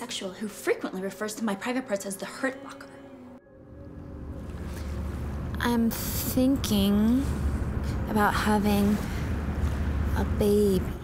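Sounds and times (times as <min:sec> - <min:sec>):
outdoor background rumble: 0:03.8 - 0:11.0.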